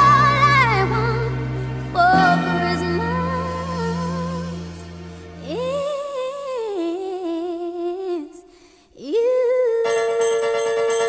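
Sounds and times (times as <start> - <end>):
woman singing a long note: 2.0 - 8.4.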